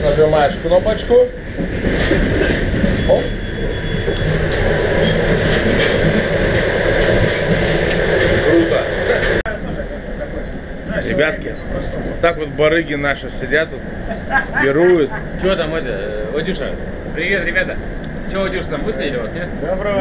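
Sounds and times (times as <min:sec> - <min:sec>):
train running noise: 0:00.0 - 0:20.0.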